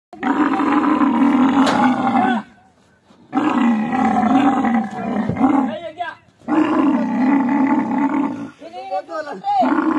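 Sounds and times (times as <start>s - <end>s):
camel bellowing: 0.2s - 2.6s, 3.3s - 8.6s, 9.5s - 9.9s.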